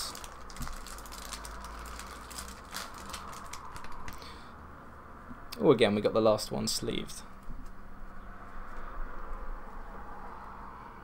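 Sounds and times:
plastic wrap crinkling: 0.0 - 4.2.

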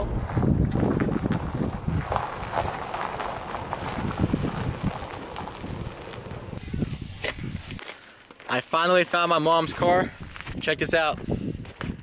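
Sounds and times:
wind buffeting microphone: 0.0 - 7.9, 9.6 - 12.0.

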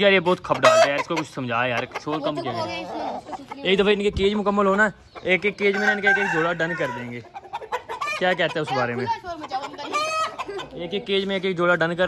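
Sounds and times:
chickens calling: 0.0 - 12.0.

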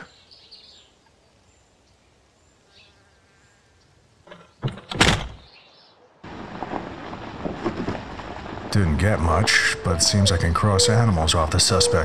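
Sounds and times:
low hiss: 0.0 - 4.3.

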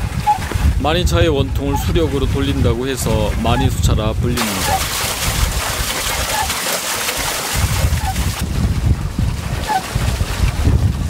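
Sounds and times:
water splashing over paddle wheel: 0.0 - 11.0
stream water rushing: 4.4 - 8.5.

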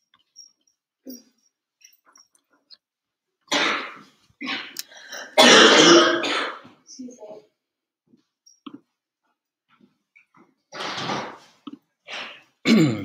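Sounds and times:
person coughing: 3.5 - 6.6, 12.1 - 13.0
person clearing throat: 5.4 - 6.6, 12.2 - 13.0.

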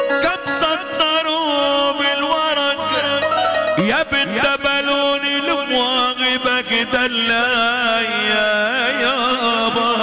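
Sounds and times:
ornamented melodic line: 0.0 - 4.9.

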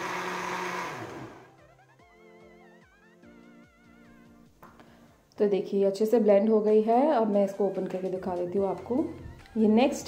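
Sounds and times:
blender motor humming: 0.0 - 1.6.

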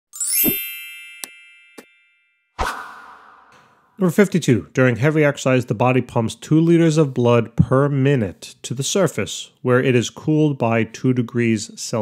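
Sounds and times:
rising ringing chime: 0.1 - 3.8
low hit: 2.6 - 4.0.

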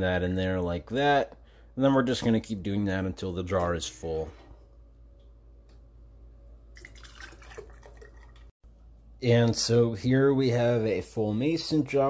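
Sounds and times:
liquid splashing and trickling: 6.7 - 8.5.

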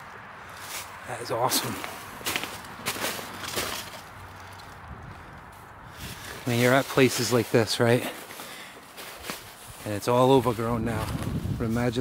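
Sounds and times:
leather knocking and rustling on stone: 1.8 - 4.1.

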